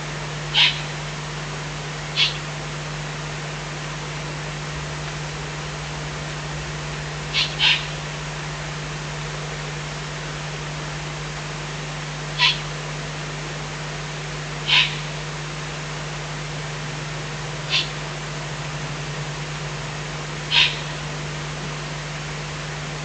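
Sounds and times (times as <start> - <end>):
electrical hum and hiss: 0.0 - 23.0
owl chicks hissing begging calls: 0.5 - 1.0, 2.1 - 2.5, 7.3 - 8.0, 12.4 - 12.7, 14.6 - 15.2, 17.6 - 18.0, 20.5 - 21.0.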